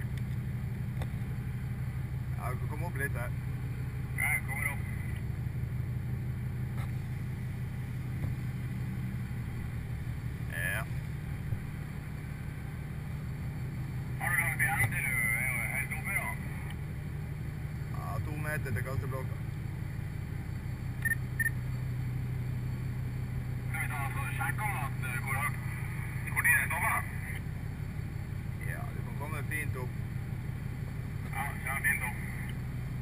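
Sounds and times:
low mechanical drone: 0:00.0 - 0:33.0
machinery humming: 0:00.0 - 0:33.0
short high electronic beeps: 0:21.0 - 0:21.6.

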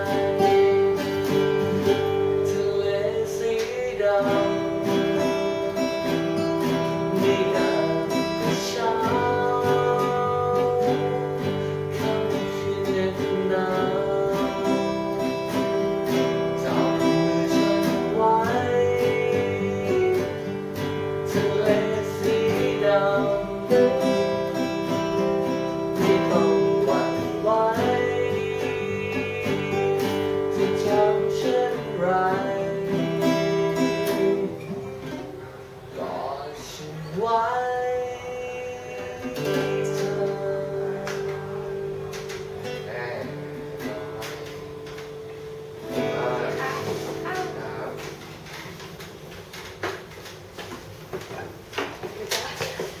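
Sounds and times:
person singing: 0:00.0 - 0:35.4, 0:36.0 - 0:44.9, 0:45.8 - 0:48.2
acoustic guitars playing chords: 0:00.0 - 0:53.0.

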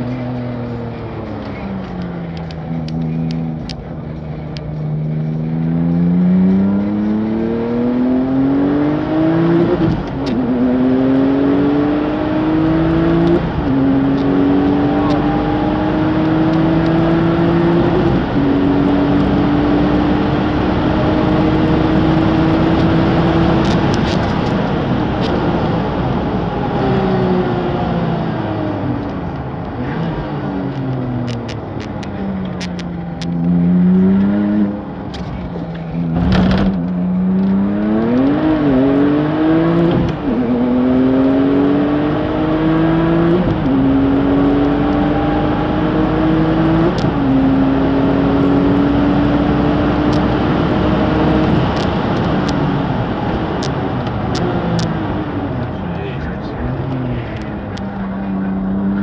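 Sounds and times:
racing car engine accelerating: 0:00.0 - 0:59.0.

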